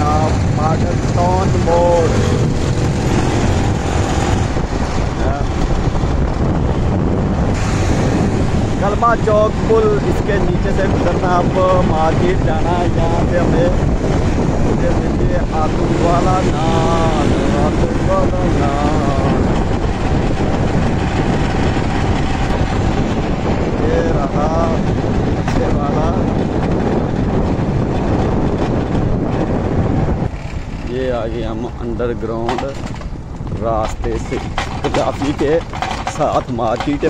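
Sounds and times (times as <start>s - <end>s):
road traffic noise: 0.0s - 37.0s
wind buffeting microphone: 0.0s - 37.0s.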